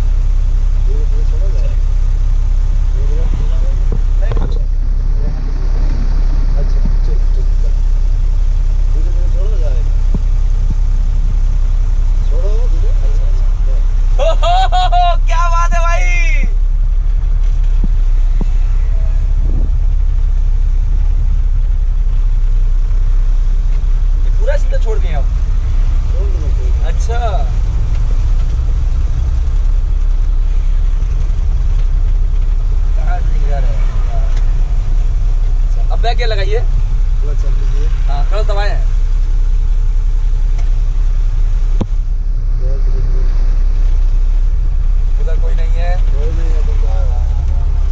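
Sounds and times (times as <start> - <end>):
diesel truck engine droning: 0.0 - 47.9
bursts of voices: 12.3 - 16.7.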